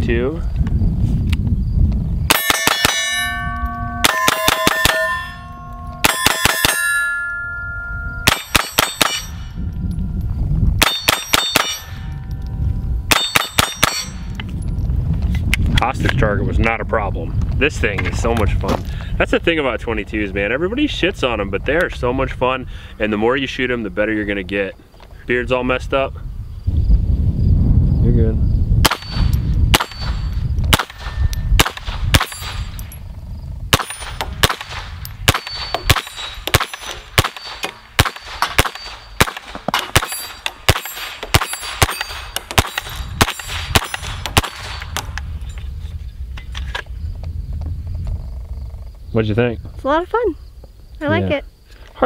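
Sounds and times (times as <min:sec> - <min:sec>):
wind buffeting microphone: 0:00.0 - 0:51.6
pistol shots: 0:02.3 - 0:05.2, 0:06.0 - 0:06.9, 0:08.2 - 0:09.5, 0:10.8 - 0:12.2, 0:13.1 - 0:14.2, 0:28.8 - 0:32.8, 0:33.7 - 0:45.1
steel plates ringing: 0:02.3 - 0:09.8, 0:10.8 - 0:14.4, 0:35.3 - 0:39.3, 0:39.9 - 0:45.6.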